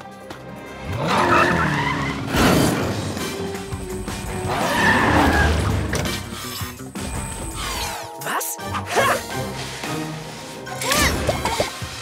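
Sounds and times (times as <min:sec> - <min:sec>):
action background music: 0:00.0 - 0:12.0
tyres skidding: 0:00.3 - 0:08.0
cartoon car racing: 0:00.8 - 0:03.2.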